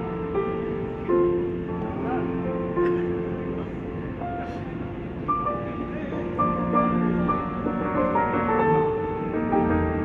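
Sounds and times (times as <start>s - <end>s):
grand piano played softly: 0.0s - 10.0s.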